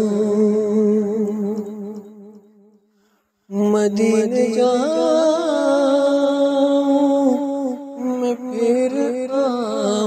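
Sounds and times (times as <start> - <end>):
person singing with vibrato: 0.0 - 2.6, 3.5 - 10.0.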